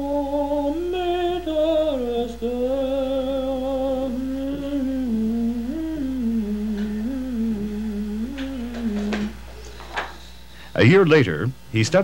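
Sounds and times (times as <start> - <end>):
person humming: 0.0 - 9.7.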